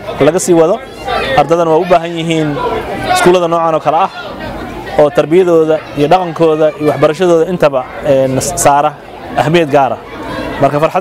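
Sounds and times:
man talking: 0.0s - 10.0s, 10.6s - 11.0s.

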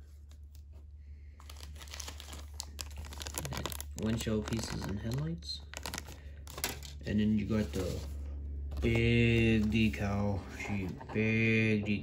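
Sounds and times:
plastic bag crinkling: 1.4s - 8.1s.

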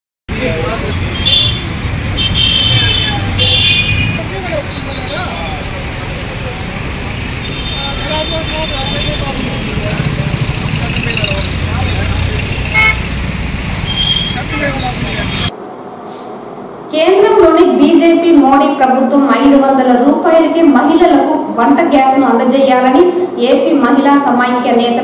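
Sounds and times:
vehicles passing: 0.3s - 17.0s
car horns tooting: 0.6s - 5.8s, 7.2s - 15.5s
faint voices: 2.7s - 13.0s.

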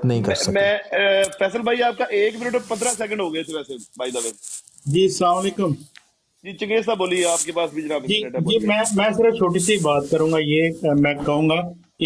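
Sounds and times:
man speaking over phone-like audio: 0.0s - 12.0s.

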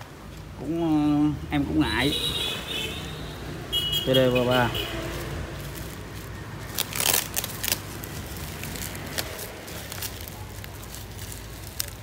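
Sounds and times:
bubble wrap and tape crinkling: 4.2s - 12.0s.

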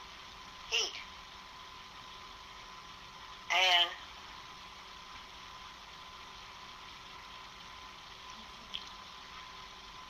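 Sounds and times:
faint recording hiss: 0.0s - 10.0s.

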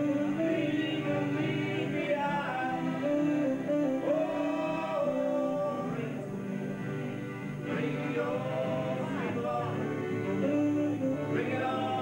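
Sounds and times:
man singing: 0.0s - 6.6s, 7.7s - 12.0s
live band playing: 0.0s - 8.7s, 9.3s - 12.0s.

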